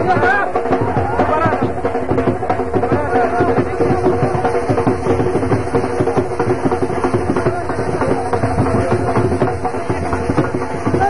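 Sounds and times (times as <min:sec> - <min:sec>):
drums beating fast rhythm: 0:00.0 - 0:11.0.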